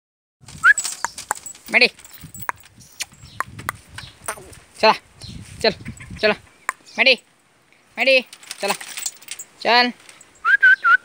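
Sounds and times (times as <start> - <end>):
metal chain clinking on metal: 0.6 - 3.4, 8.2 - 10.5
person calling: 4.2 - 5.0.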